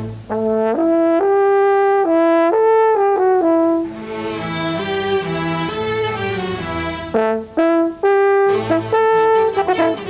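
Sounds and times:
string section sustained chords: 3.8 - 10.0.

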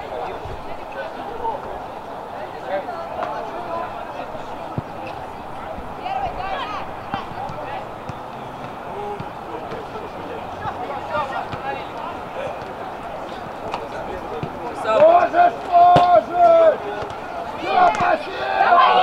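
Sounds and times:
players shouting: 1.1 - 19.0.

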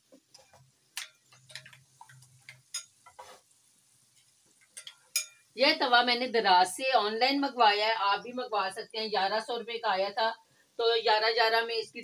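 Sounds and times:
pan ticking while heating: 0.1 - 3.2, 4.1 - 5.5.

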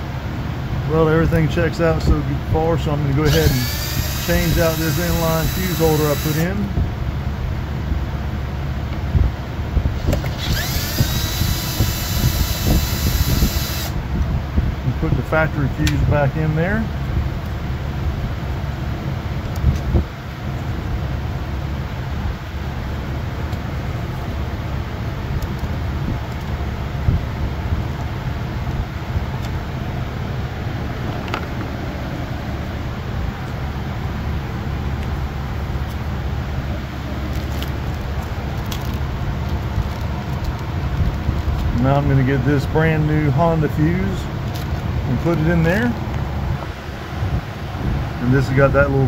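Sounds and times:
steady low rumble: 0.0 - 49.0.

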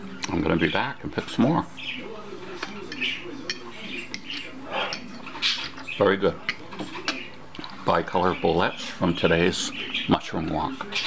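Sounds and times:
fork scraping on ceramic plate: 2.6 - 7.3.

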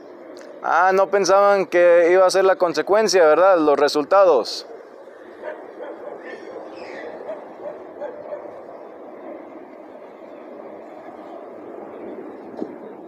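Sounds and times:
faint street background: 0.0 - 13.0
distant dog barking: 4.7 - 8.7.

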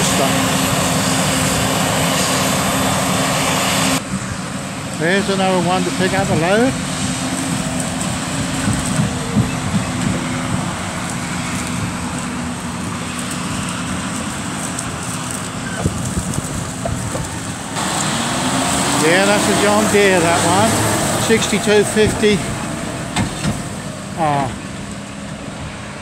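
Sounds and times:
tractor engine droning: 0.0 - 26.0.

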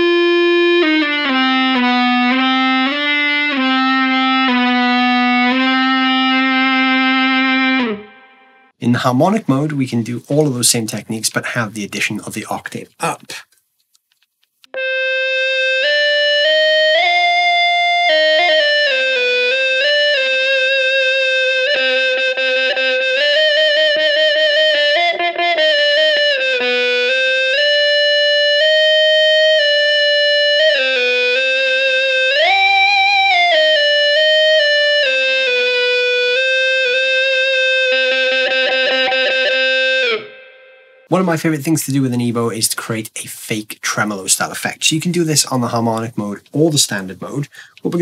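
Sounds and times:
sustained electric guitar notes: 0.0 - 8.8, 14.7 - 41.2.

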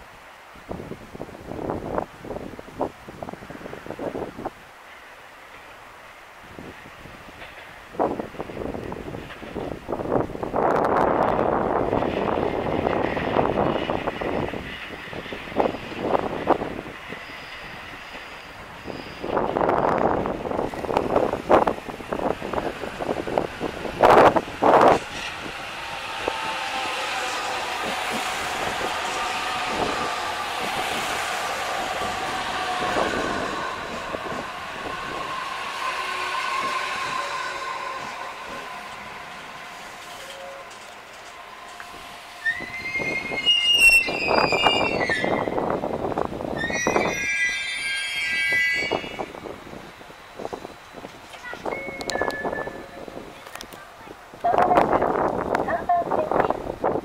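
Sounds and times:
electric train whine: 0.0 - 57.0
train rumble with buffeting: 0.0 - 57.0
high squeals: 17.0 - 20.2, 24.0 - 53.2.

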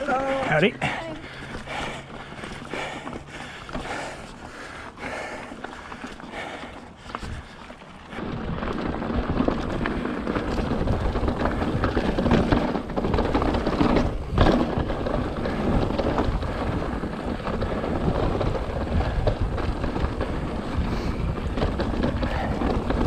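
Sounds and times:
bike clattering: 0.0 - 23.0
bike tyres rumbling on rock: 0.0 - 23.0
bike jolting over rock ledge: 7.2 - 23.0.

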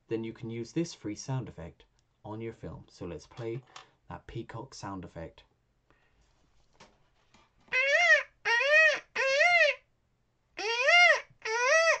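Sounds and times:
man imitating peacock calls: 7.7 - 9.9, 10.6 - 12.0.

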